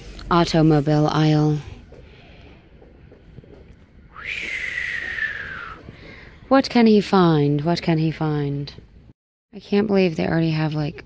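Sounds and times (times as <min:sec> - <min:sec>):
person whistling: 0:04.1 - 0:05.8.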